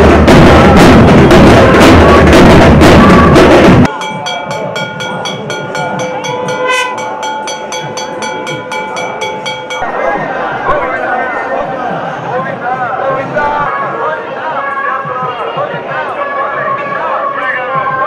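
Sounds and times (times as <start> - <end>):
fast loud drumming: 0.0 - 11.1
ticking beat: 0.0 - 11.1
crowd voices: 0.0 - 18.0.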